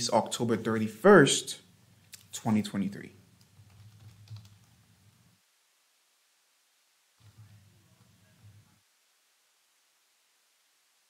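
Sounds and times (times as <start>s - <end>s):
faint keyboard typing: 3.4s - 4.8s, 7.2s - 8.8s.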